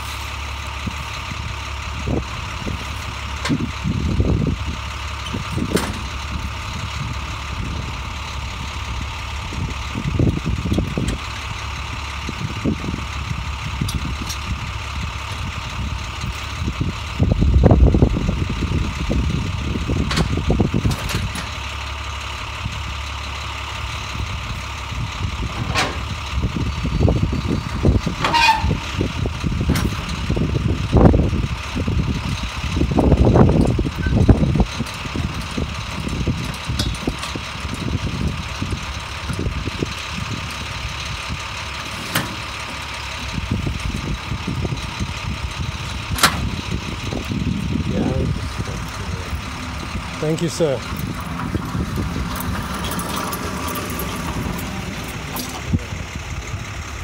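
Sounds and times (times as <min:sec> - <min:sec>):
truck engine idling: 0:00.0 - 0:57.0
pallet jack clanks and knocks: 0:05.2 - 0:06.2, 0:25.5 - 0:26.2, 0:28.1 - 0:29.0, 0:33.6 - 0:39.5, 0:41.6 - 0:44.3, 0:46.0 - 0:46.6.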